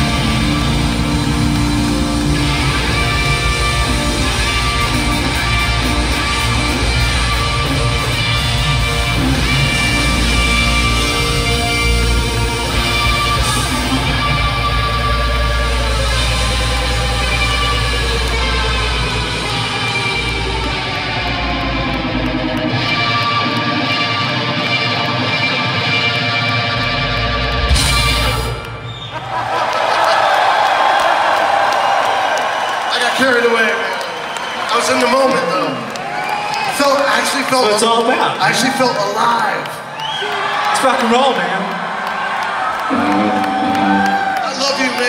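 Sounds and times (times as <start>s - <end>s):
crowd cheering and shouting: 0.0s - 45.0s.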